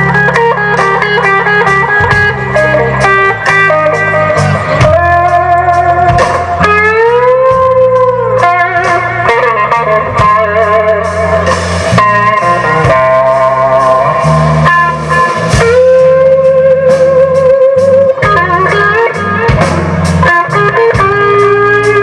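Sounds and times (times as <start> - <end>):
electric guitar soloing: 0.0 - 22.0
live blues band: 0.0 - 22.0.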